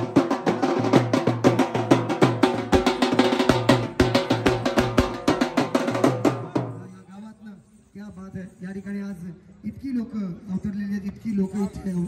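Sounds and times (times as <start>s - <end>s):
drums beaten in fast rhythm: 0.0s - 7.0s.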